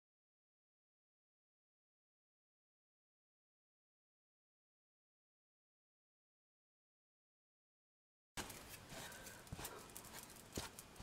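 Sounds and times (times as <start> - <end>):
handling clicks and rustles: 8.4 - 11.0.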